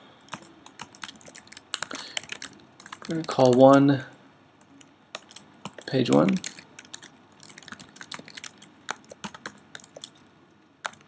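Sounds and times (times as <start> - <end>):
computer keyboard typing: 0.3 - 3.9, 4.6 - 10.2.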